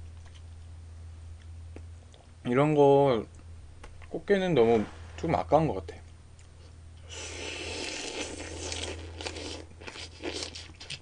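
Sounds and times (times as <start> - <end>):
wet chewing: 0.0 - 0.7, 6.3 - 11.0
person slurping noodles: 7.1 - 11.0.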